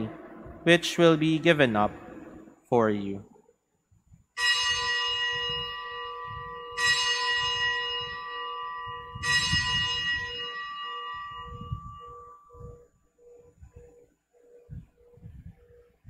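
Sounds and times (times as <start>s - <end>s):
altar bell ringing: 4.4s - 13.6s.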